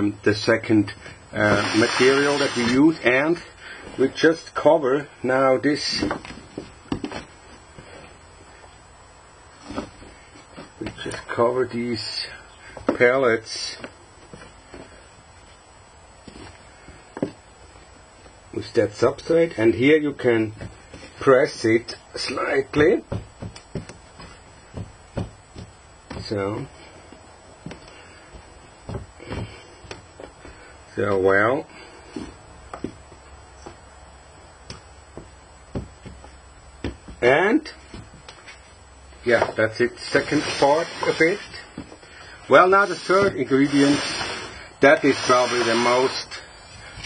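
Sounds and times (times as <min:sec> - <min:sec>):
hands rustling loose soil: 0:01.4 - 0:03.0, 0:34.6 - 0:47.0.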